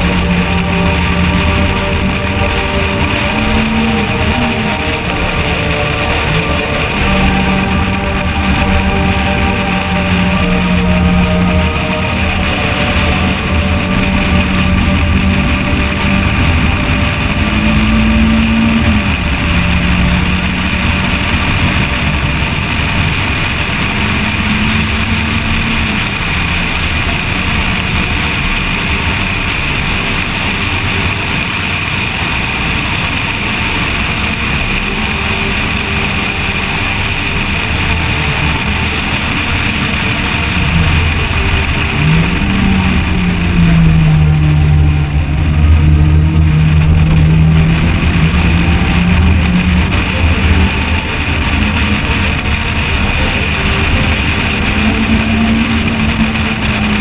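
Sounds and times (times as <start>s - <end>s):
car engine revving: 0.0s - 57.0s
wind and road noise: 0.0s - 57.0s.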